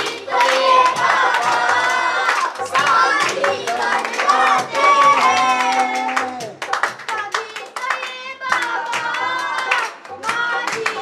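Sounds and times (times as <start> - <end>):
hands clapping: 0.0 - 11.0.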